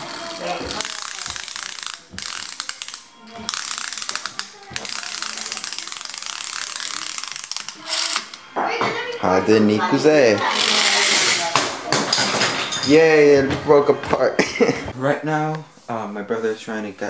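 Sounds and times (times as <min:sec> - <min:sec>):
toy wheels ratcheting clatter: 0:00.0 - 0:08.4, 0:10.4 - 0:11.5.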